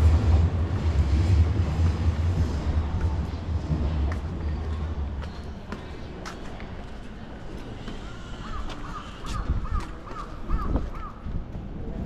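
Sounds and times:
low street background: 0:00.0 - 0:12.0.

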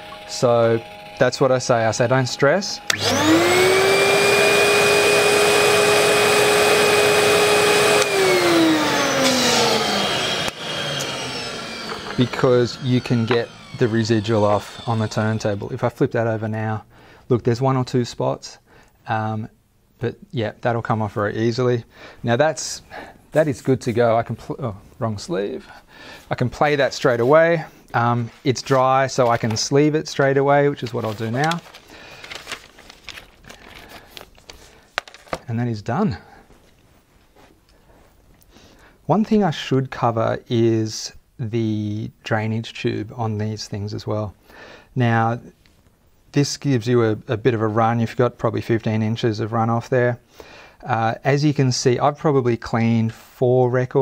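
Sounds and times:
vacuum motor whining: 0:00.0 - 0:15.8
record sleeve rustling: 0:28.5 - 0:29.9, 0:30.6 - 0:35.5.

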